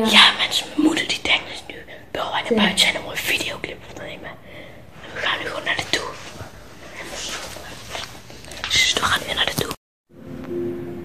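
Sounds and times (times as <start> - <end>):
boys whispering: 0.0 - 4.4, 5.0 - 8.1, 8.7 - 9.8.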